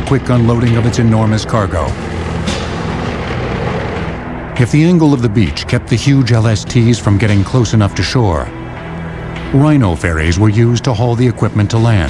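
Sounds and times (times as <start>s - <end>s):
heavy vehicle engines rumbling: 0.0s - 7.3s.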